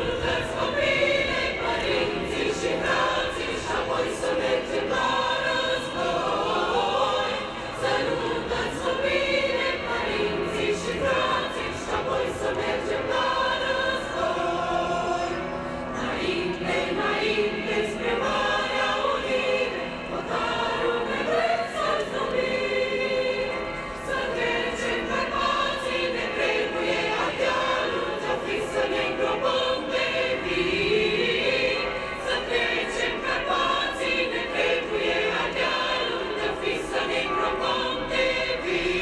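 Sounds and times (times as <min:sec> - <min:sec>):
choir singing sustained notes: 0:00.0 - 0:39.0.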